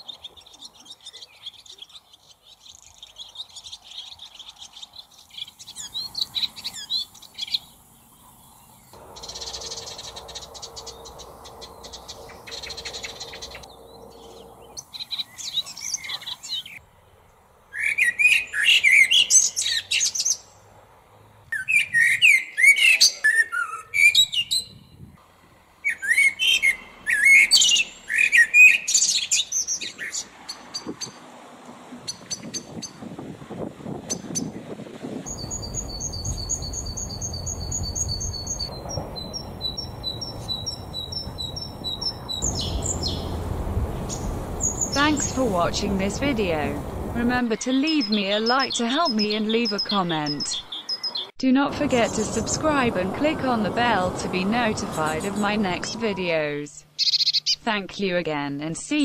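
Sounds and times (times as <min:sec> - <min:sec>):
songbirds chirping: 0:00.0 - 0:33.1, 0:34.1 - 0:59.0.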